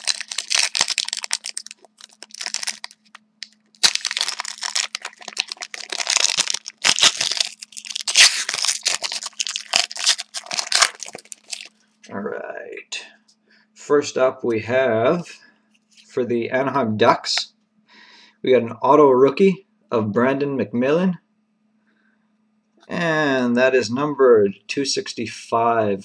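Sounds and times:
plastic wrapper crinkling and tearing: 0:00.0 - 0:11.7.

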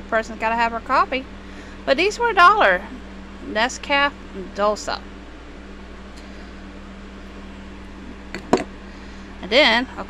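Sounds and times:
background hum: 0:00.0 - 0:10.0
glass jar set down on table: 0:08.3 - 0:08.7.

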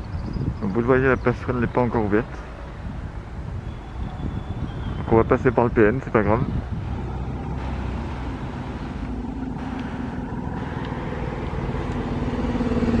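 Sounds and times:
bus engine rumbling: 0:00.0 - 0:13.0.

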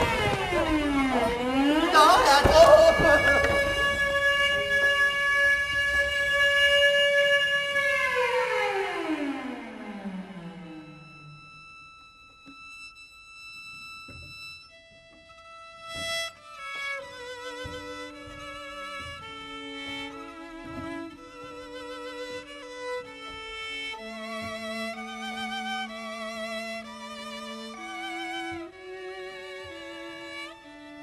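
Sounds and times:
bowed violin and cello: 0:00.0 - 0:31.0.

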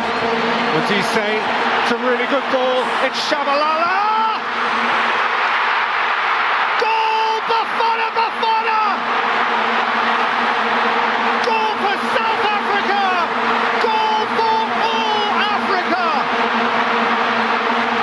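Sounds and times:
loud crowd din: 0:00.0 - 0:18.0.

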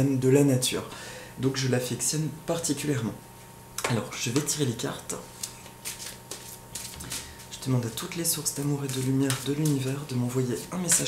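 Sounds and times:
cards being shuffled: 0:05.3 - 0:11.0.

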